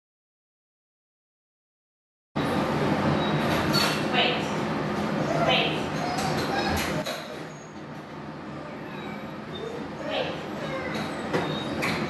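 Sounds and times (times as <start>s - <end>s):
high squeaks: 6.0s - 7.8s, 8.5s - 12.0s.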